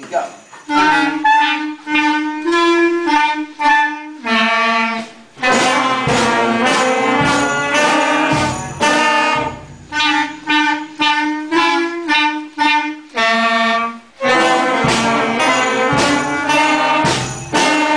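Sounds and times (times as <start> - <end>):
concert band playing: 0.7 - 17.9.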